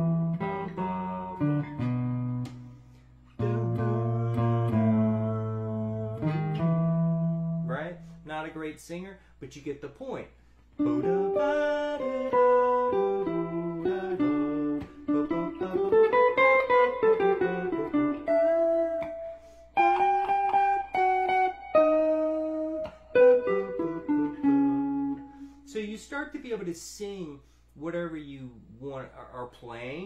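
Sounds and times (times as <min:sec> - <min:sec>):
jazz guitar playing: 0:00.0 - 0:08.3, 0:10.8 - 0:25.7.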